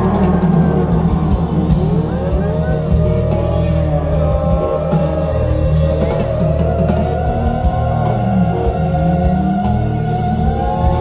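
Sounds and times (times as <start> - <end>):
gliding melody: 0.0 - 11.0
low bass notes: 0.0 - 11.0.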